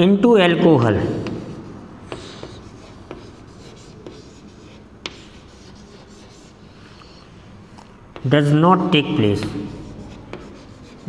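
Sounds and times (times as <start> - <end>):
chalk taps: 0.8 - 8.5, 9.2 - 11.0
chalk scratching on blackboard: 1.1 - 7.3, 9.2 - 11.0.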